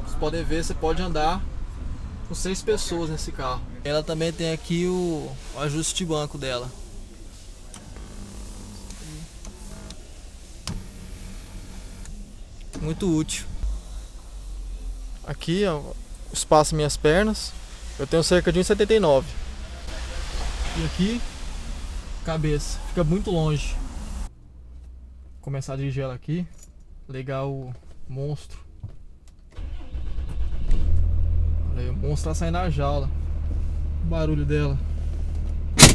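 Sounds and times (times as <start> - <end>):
diesel engine starting and running: 0.0 - 25.2, 29.6 - 35.9
low cabin rumble: 0.0 - 25.4.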